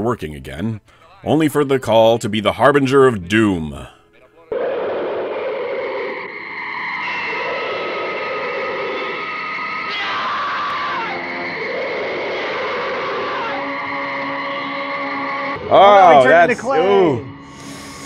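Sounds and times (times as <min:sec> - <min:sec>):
men screaming: 0:04.5 - 0:17.4
creature shrill wavering screech: 0:04.5 - 0:18.0
falling sweep: 0:04.5 - 0:18.0
held orchestral notes: 0:13.6 - 0:18.0.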